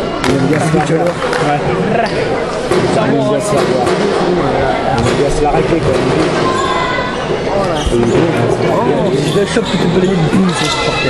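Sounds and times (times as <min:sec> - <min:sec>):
people talking: 0:00.2 - 0:11.0.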